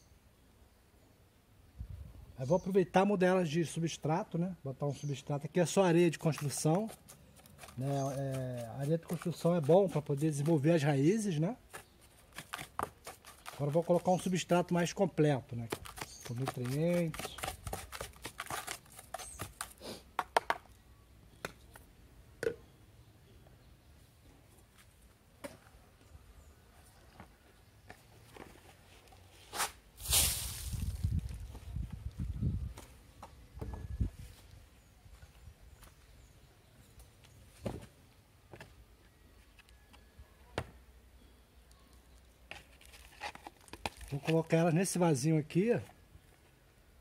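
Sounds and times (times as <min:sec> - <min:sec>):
hands stirring gritty potting mix: 0:05.6 - 0:20.5, 0:42.1 - 0:45.9.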